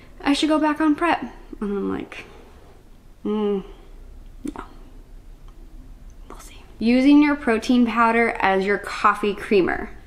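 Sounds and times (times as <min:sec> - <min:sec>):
woman talking: 0:00.2 - 0:02.4, 0:03.2 - 0:04.9, 0:06.3 - 0:10.0
soft breath: 0:02.2 - 0:02.9.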